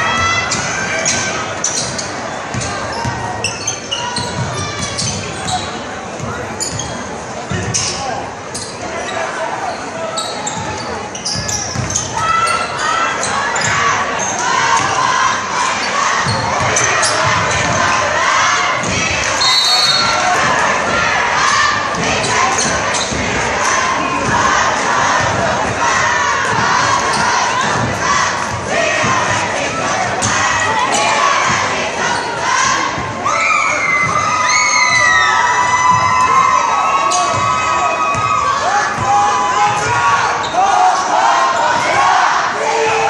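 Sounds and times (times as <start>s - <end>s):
crowd shouting and cheering: 0.0s - 43.0s.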